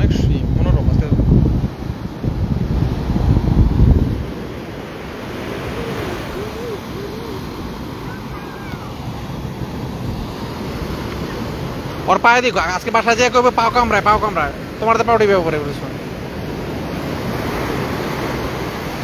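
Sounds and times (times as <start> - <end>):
wind buffeting microphone: 0.0 - 12.1
ocean surf breaking on beach: 0.0 - 19.0.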